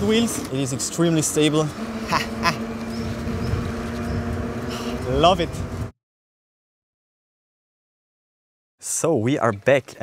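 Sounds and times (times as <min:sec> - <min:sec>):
electric bike motor and tyres humming: 0:00.0 - 0:05.9
wind rumble on microphone: 0:01.7 - 0:05.9.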